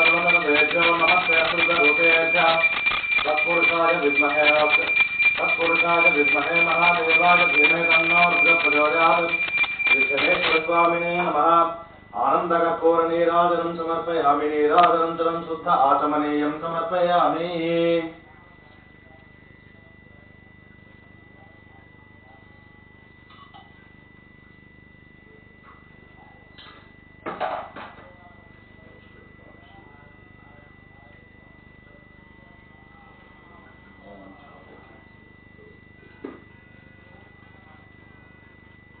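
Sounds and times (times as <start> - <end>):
constant high-pitched tone: 0.0 - 39.0
high-pitched whine: 0.0 - 39.0
low room hum: 0.0 - 39.0.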